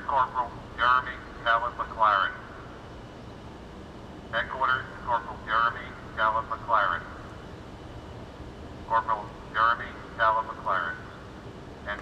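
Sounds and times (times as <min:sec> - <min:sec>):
man talking over police radio: 0:00.0 - 0:02.4, 0:04.4 - 0:07.1, 0:08.9 - 0:11.1
low background hiss: 0:00.0 - 0:12.0.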